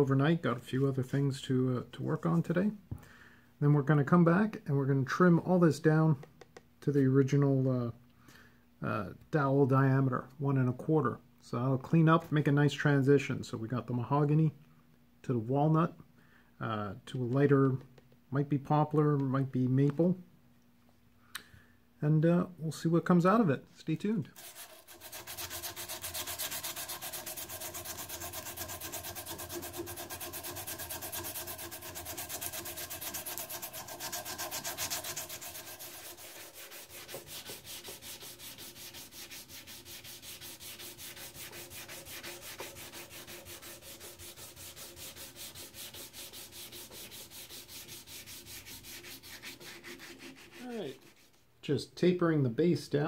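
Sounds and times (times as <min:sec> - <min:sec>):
sandpaper sanding wood: 0:24.4 - 0:51.4.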